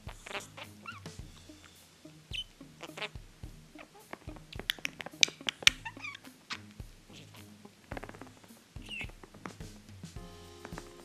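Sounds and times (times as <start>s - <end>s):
budgerigar chattering: 0.0s - 9.4s
soft background music: 0.0s - 11.0s.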